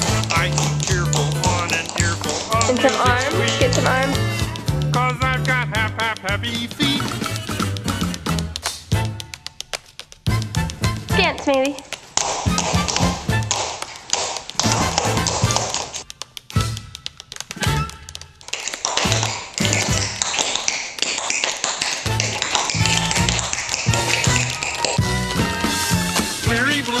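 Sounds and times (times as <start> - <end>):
swing band playing: 0.0 - 9.4, 10.2 - 18.2, 18.9 - 20.5, 22.0 - 27.0
tap shoes clicking: 0.0 - 27.0.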